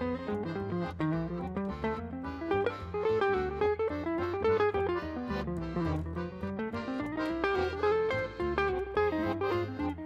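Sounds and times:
bass: 0:00.0 - 0:10.0
guitar melody line: 0:00.0 - 0:10.0.

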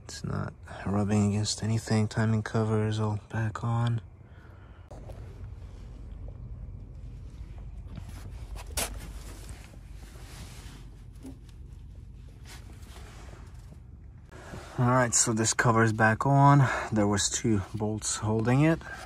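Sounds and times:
low steady rumble: 0:00.0 - 0:19.0
handling scuffs and rustles: 0:05.0 - 0:14.7.

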